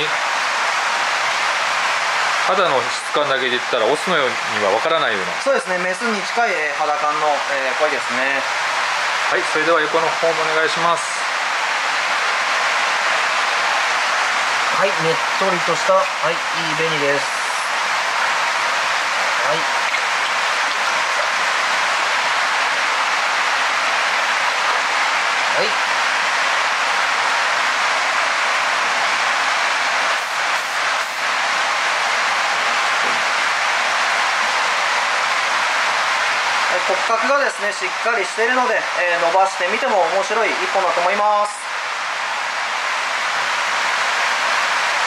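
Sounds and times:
water rushing hiss: 0:00.0 - 0:38.5
water stirred by hands: 0:13.4 - 0:25.5.

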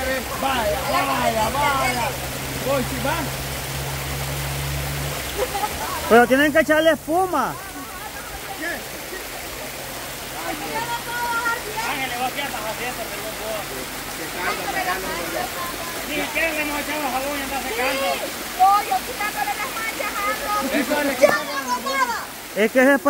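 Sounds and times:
river flowing: 0:00.0 - 0:23.0
women chattering: 0:07.5 - 0:09.4, 0:10.3 - 0:12.0, 0:14.4 - 0:16.4, 0:17.7 - 0:22.4.

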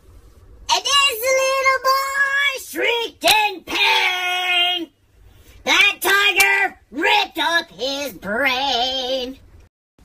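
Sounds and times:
high-pitched voice singing wordlessly: 0:00.7 - 0:04.9, 0:05.7 - 0:09.4.

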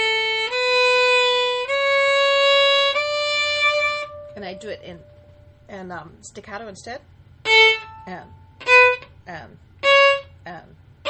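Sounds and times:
violin playing bowed notes: 0:00.0 - 0:05.6, 0:07.4 - 0:09.1, 0:09.8 - 0:10.4.

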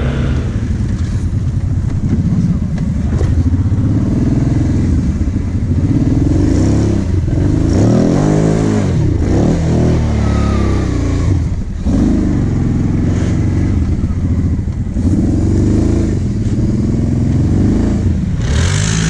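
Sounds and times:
quad bike engine revving: 0:00.0 - 0:19.0.

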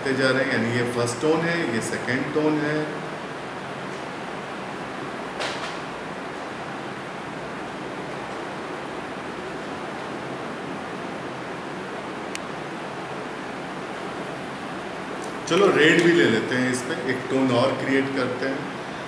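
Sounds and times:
steady background hiss: 0:00.0 - 0:19.0.

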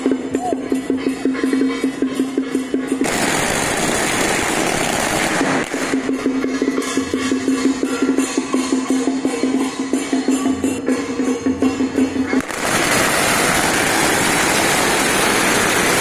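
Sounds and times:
rhythmic percussive music: 0:00.0 - 0:16.0
firecrackers crackling: 0:03.0 - 0:06.4, 0:12.4 - 0:16.0.

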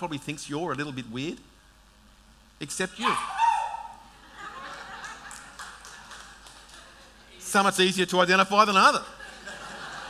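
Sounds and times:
crowd laughing: 0:04.1 - 0:06.6, 0:09.2 - 0:10.0.

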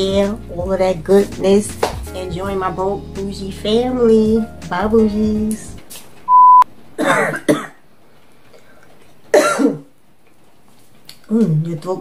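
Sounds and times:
loud steady beep: 0:06.3 - 0:06.7
woman coughing and clearing throat: 0:07.0 - 0:07.8, 0:09.3 - 0:09.9.

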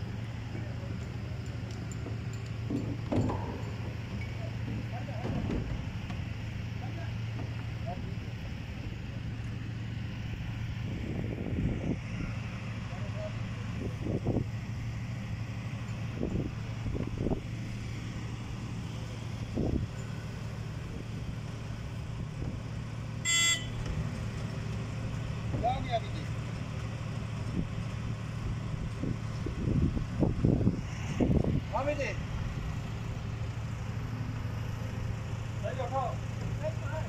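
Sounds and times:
crane diesel engine running: 0:00.0 - 0:37.0
voices: 0:00.2 - 0:10.5, 0:11.4 - 0:14.5, 0:25.4 - 0:26.6, 0:31.2 - 0:37.0
short high-pitched toot: 0:23.2 - 0:23.8.

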